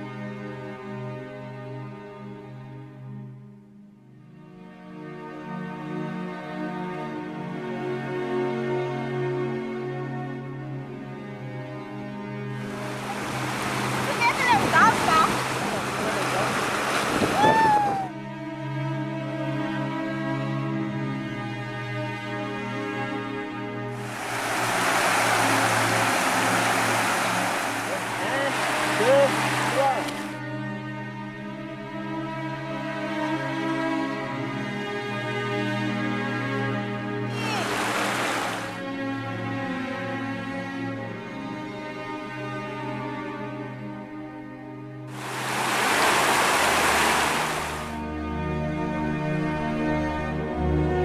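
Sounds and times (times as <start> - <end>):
background music: 0.0 - 16.9, 17.7 - 51.0
river water rushing over rocks: 12.6 - 18.0, 24.0 - 30.4, 37.3 - 38.8, 45.1 - 48.0.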